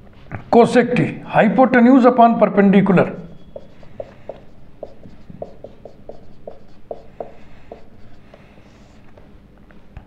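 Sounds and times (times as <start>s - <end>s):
marker pen writing on whiteboard: 3.0s - 9.2s.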